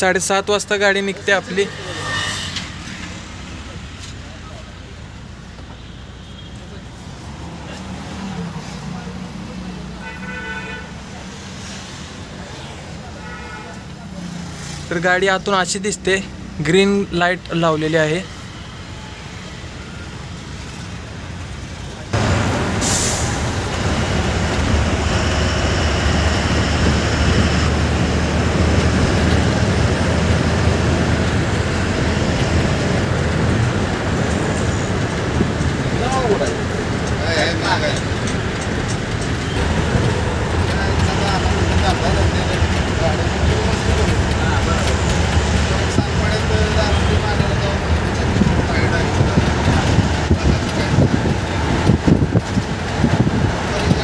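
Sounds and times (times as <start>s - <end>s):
bus engine rumbling: 0.0s - 54.0s
road noise: 0.0s - 54.0s
air brake hiss: 22.8s - 23.5s.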